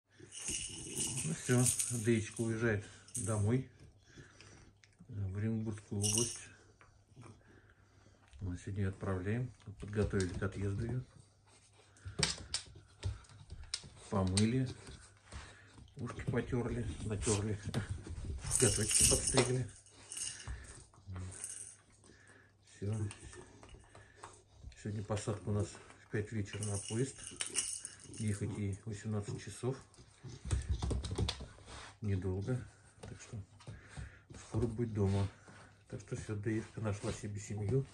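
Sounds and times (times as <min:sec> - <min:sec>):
puppy claws clicking on floor: 0:12.0 - 0:16.3.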